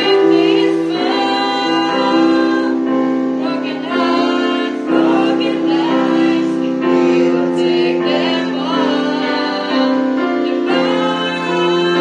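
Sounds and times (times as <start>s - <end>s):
electric keyboard accompaniment: 0.0s - 12.0s
women singing worship song: 0.0s - 12.0s.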